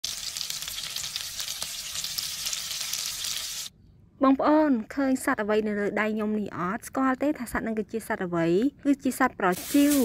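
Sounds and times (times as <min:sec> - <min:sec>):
meat sizzling in hot oil: 0:00.0 - 0:03.7, 0:09.6 - 0:10.0.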